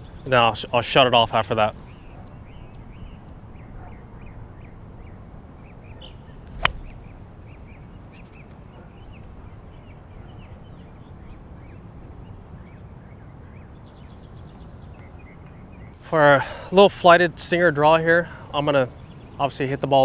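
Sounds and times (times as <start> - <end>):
birds chirping: 0.0 - 16.9, 17.8 - 20.0
golf club striking ball: 6.3 - 7.5.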